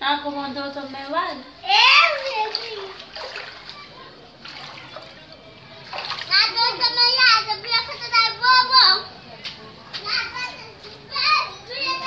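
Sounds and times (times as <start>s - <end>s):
children calling out: 1.4s - 5.1s, 10.1s - 12.0s.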